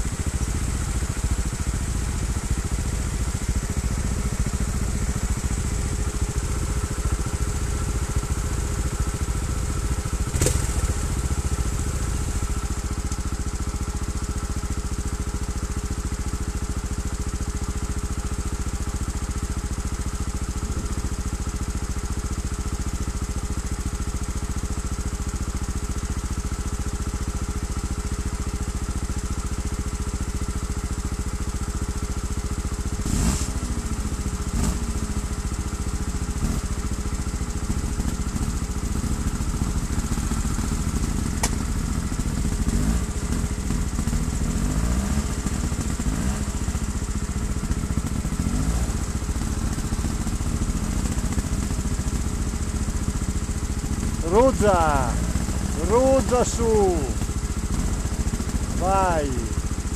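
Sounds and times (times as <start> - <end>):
motorcycle engine idling and revving: 0.0 - 59.9.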